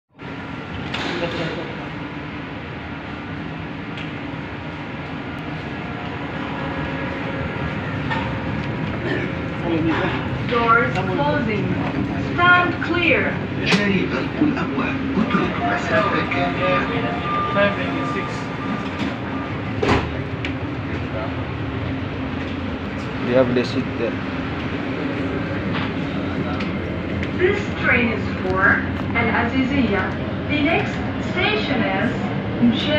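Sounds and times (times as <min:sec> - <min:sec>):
train and ventilation hum: 0:00.1 - 0:32.9
indistinct passenger voices: 0:00.2 - 0:32.9.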